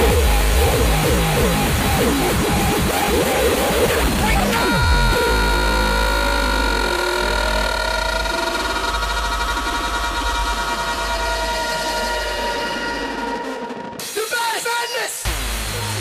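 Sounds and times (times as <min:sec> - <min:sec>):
deep bass drone: 0:00.0 - 0:13.8, 0:15.3 - 0:16.0
held synth tones: 0:00.0 - 0:13.9.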